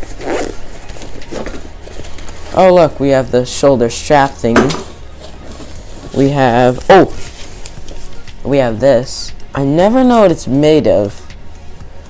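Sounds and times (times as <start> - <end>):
zipper pulled open: 0.0 - 2.6.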